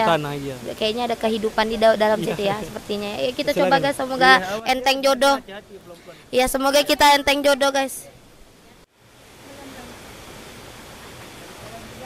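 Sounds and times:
stream water rushing: 0.0 - 12.0.

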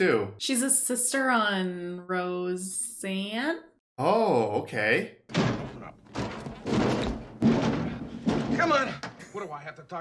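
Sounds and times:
washing machine thumps and clunks: 5.3 - 9.2.

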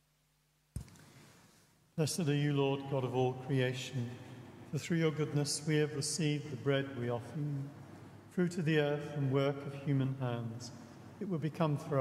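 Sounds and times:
faint hum: 0.0 - 12.0
faint noise: 0.0 - 12.0.

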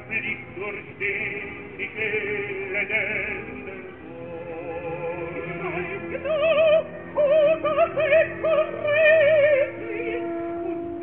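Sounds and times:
operatic voice singing: 0.0 - 11.0.

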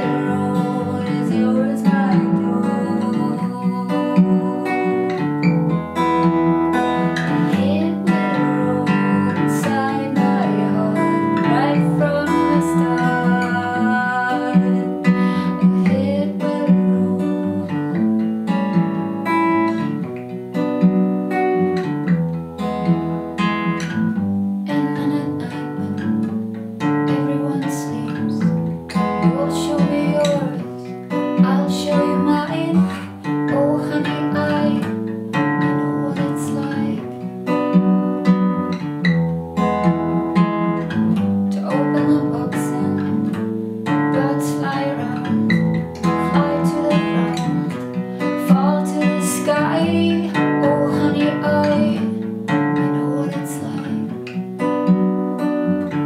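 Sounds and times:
woman singing with vibrato: 0.0 - 5.5, 7.0 - 18.3, 24.7 - 26.1, 27.1 - 37.2, 41.5 - 54.2
strummed acoustic guitar: 0.0 - 56.0.

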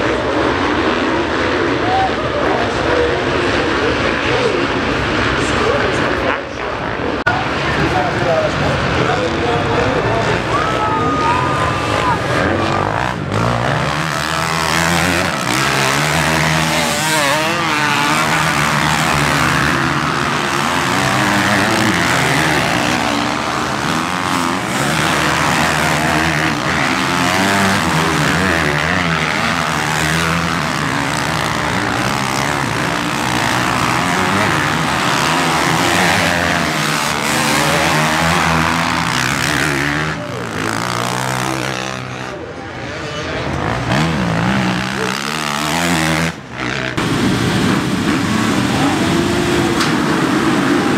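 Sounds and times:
motocross bikes revving: 0.0 - 50.9.

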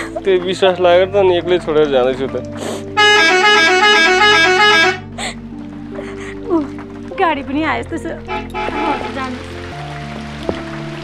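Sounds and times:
background music: 0.0 - 11.0
bus musical horn: 3.0 - 5.1, 8.3 - 9.3.

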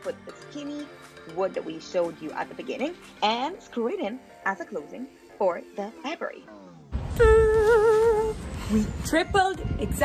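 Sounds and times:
woman humming with vibrato: 7.2 - 8.4.

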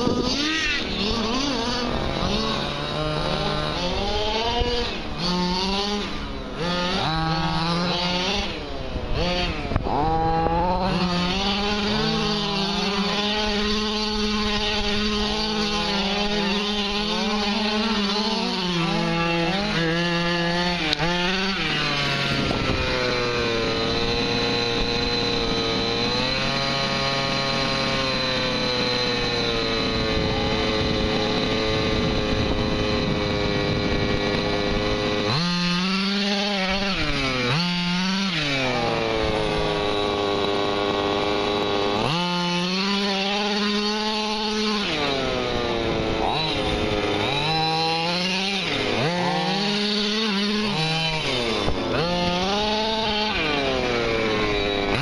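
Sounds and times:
two-stroke engine revving: 0.0 - 55.0.

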